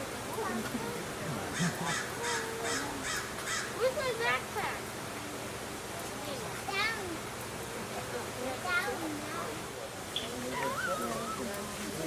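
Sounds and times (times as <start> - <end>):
people talking: 0.0 - 3.2, 3.8 - 12.0
bird calling: 1.5 - 3.8, 10.1 - 11.8.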